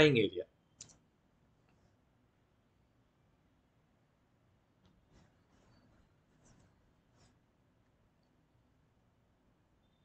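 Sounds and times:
soft scratchy sounds: 4.8 - 8.4.

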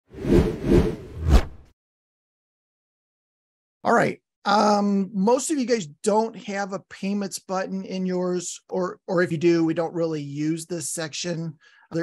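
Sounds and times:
quick whooshes: 0.1 - 1.7.

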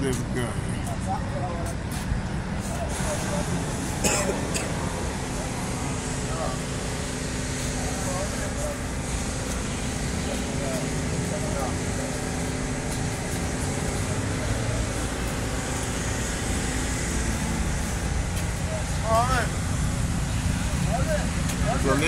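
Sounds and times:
person's voice: 0.0 - 1.6
city traffic with low hum: 0.0 - 22.0.

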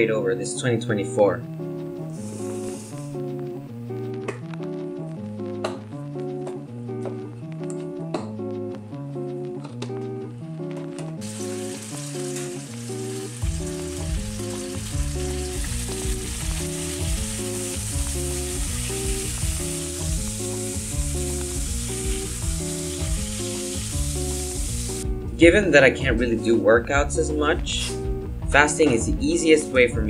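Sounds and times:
background music with bass: 0.0 - 30.0
meat sizzling in a pan: 2.1 - 3.3, 11.2 - 25.0.

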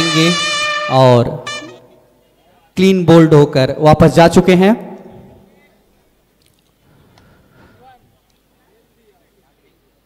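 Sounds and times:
faint distant voices: 1.0 - 3.0, 5.1 - 10.0.

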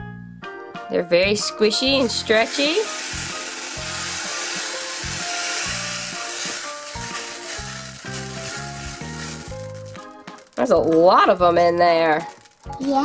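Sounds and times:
background music: 0.0 - 13.0
tiny beads pouring into plastic bin: 1.8 - 12.9.

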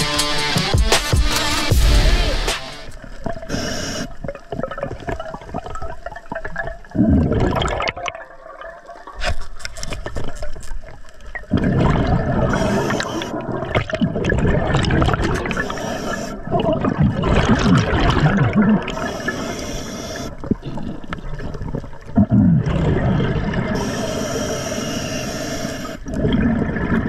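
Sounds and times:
exhaled bubbles rushing: 4.3 - 9.2, 11.4 - 15.7, 16.4 - 19.2, 20.4 - 23.8, 26.1 - 27.0
diver breathing through regulator: 12.5 - 13.4, 15.4 - 16.5, 18.9 - 21.0, 23.7 - 26.2.

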